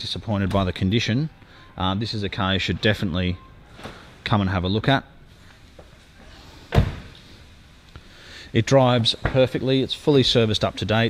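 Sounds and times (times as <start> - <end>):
car door shutting: 6.7 - 7.2.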